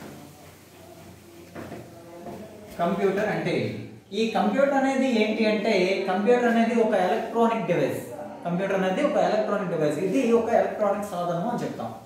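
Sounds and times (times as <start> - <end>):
man speaking: 2.5 - 12.0.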